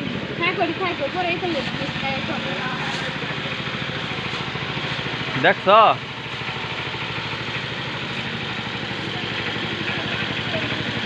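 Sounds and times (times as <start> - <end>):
threshing machine running: 0.0 - 11.0.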